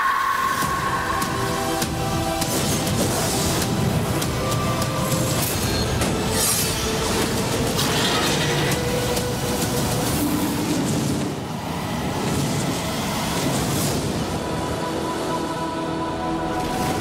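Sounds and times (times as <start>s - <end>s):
rushing rumble of effects: 0.0s - 6.4s
held music tones: 0.0s - 7.7s.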